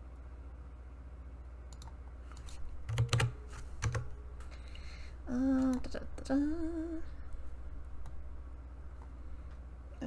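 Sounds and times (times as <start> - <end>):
low electrical hum: 0.0 - 10.0
computer keyboard typing: 1.7 - 4.2.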